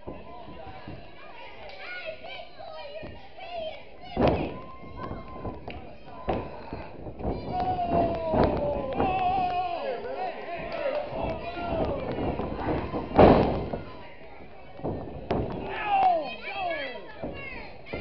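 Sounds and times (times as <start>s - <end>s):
bodies thudding on wrestling ring: 4.2s - 9.6s, 10.6s - 14.1s, 14.7s - 16.0s
crowd calling out: 6.2s - 14.2s, 15.4s - 18.0s.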